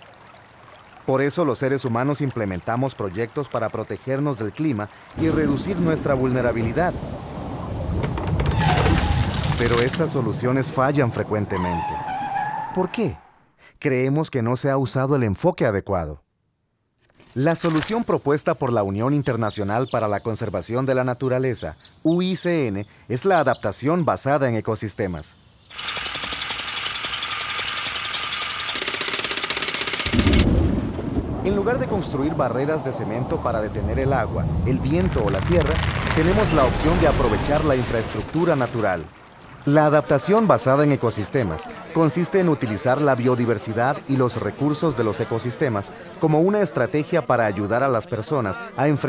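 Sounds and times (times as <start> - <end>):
rain: 0.0 - 12.7, 30.2 - 41.4
thunder rumbling: 5.2 - 12.2, 30.1 - 39.7
winch ratcheting clatter: 25.7 - 30.5.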